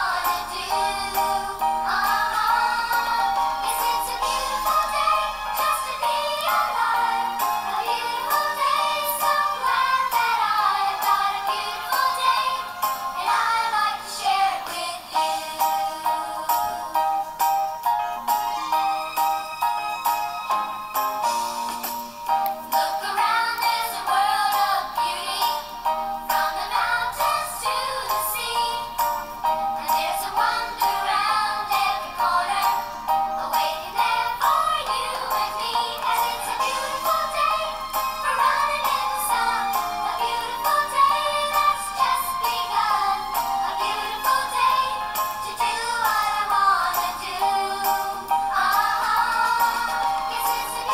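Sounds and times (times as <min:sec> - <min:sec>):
children's song with beat: 0:00.0 - 0:50.9.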